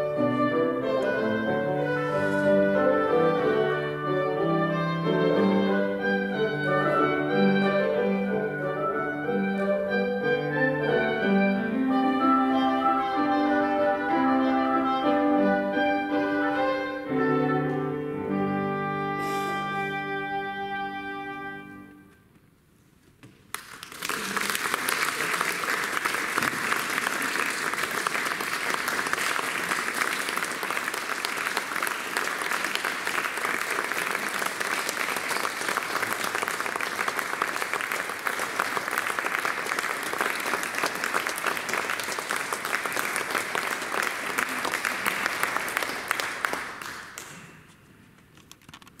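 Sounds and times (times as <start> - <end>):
audience applauding: 23.5 - 47.6.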